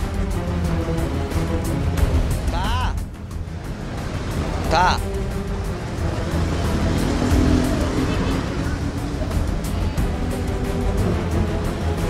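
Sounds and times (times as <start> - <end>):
background music: 0.0 - 12.0
vehicle engines on busy road: 0.0 - 12.0.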